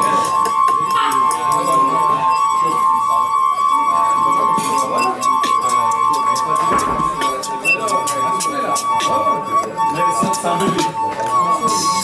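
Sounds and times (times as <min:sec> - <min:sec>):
singing wine glasses ringing: 0:00.0 - 0:12.0.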